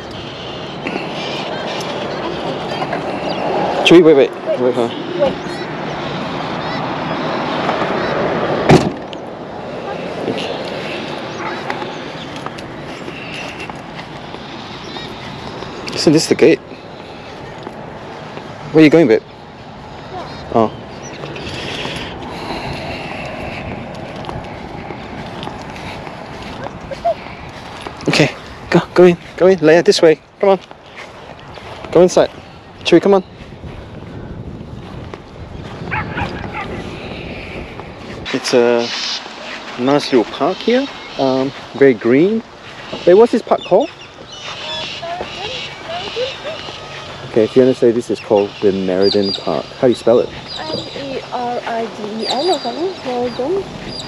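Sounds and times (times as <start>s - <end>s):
outdoor noise rush: 0.0s - 54.0s
wind rumble on microphone: 0.0s - 54.0s
car door slamming shut: 8.7s - 9.1s
small dog yipping: 35.9s - 36.8s.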